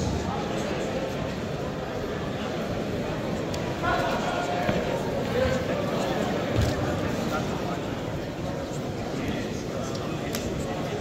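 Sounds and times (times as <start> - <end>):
crowd chattering in a hall: 0.0 - 11.0.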